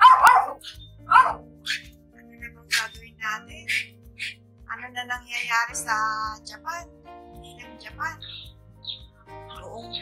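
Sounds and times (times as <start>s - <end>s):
small dog yapping: 0.0s - 1.9s, 3.7s - 4.3s
background music: 0.0s - 10.0s.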